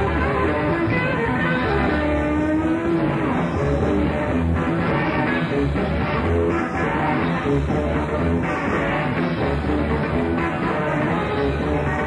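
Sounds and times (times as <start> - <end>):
bass: 0.0 - 12.0
drums: 0.0 - 12.0
electric guitar long bending note: 0.0 - 12.0.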